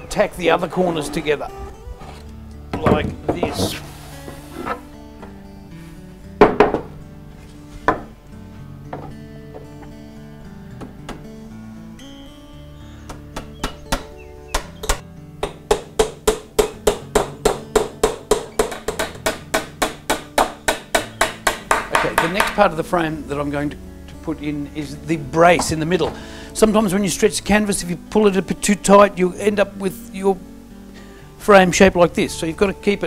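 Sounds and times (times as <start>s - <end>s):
guitar music: 0.0s - 33.0s
small hammer tapping tacks: 15.4s - 22.6s.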